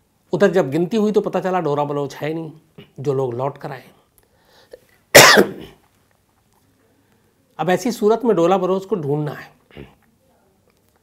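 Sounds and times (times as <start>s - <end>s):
man coughing: 5.2s - 5.8s.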